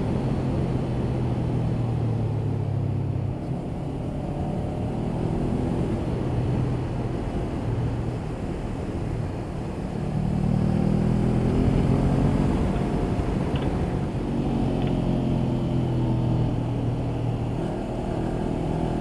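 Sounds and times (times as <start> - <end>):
wind noise: 0.0 - 19.0
motorcycle engine under throttle: 9.6 - 19.0.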